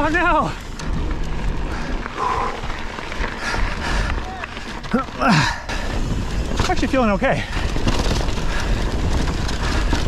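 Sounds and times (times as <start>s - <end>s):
bike tyres rolling on gravel: 0.0s - 10.0s
wind buffeting microphone: 0.6s - 10.0s.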